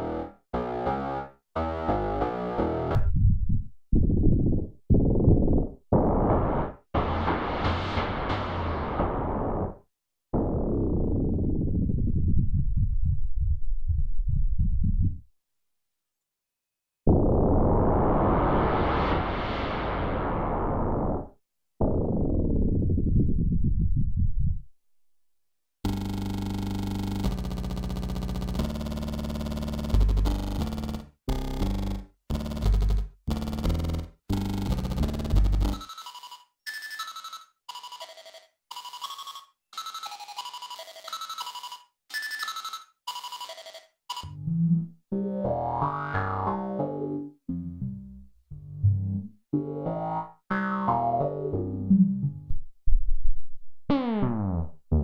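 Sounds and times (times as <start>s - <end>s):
synthesizer low held notes: 17.1s - 24.7s, 44.4s - 53.2s.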